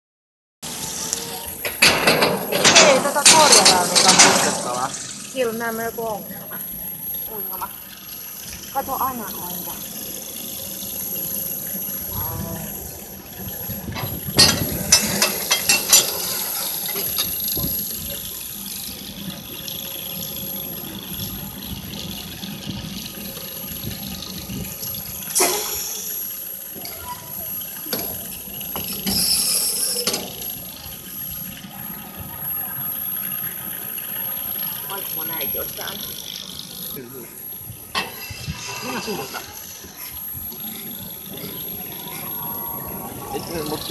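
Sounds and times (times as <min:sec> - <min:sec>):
high whine: 0:00.6 - 0:43.9
ride rumbling on rails: 0:00.7 - 0:25.4, 0:26.1 - 0:43.9.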